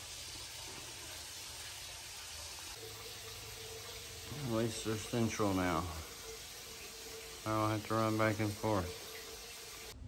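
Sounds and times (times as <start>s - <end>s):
water running from hoses: 0.0s - 10.0s.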